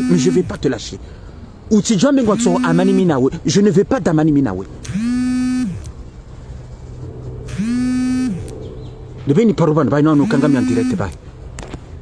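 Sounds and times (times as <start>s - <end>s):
man speaking: 0.0s - 1.0s, 1.7s - 4.7s, 9.3s - 11.2s
low steady hum: 0.0s - 12.0s.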